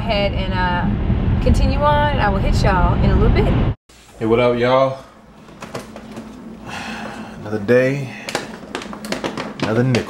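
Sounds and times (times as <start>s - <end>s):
items knocking in refrigerator: 8.3s - 10.0s.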